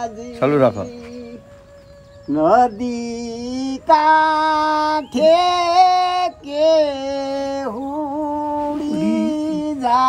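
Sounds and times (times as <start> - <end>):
person singing folk song solo: 2.6 - 10.0.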